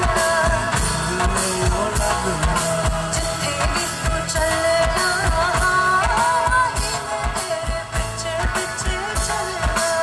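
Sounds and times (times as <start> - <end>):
live band music: 0.0 - 10.0
woman singing into microphone: 0.0 - 10.0.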